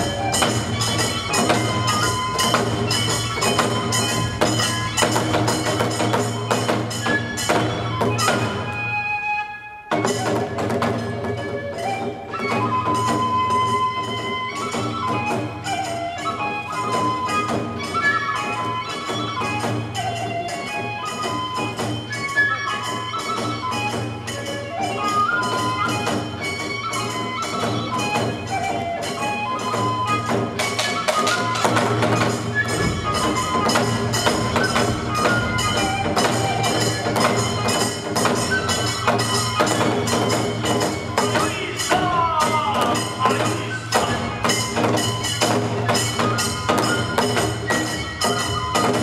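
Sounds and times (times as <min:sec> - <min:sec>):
hand cymbals ringing: 0:00.0 - 0:08.6, 0:15.6 - 0:49.0
drum strokes: 0:00.0 - 0:09.0, 0:09.9 - 0:49.0
bamboo flute long notes: 0:00.0 - 0:49.0
drum beat: 0:30.6 - 0:46.2.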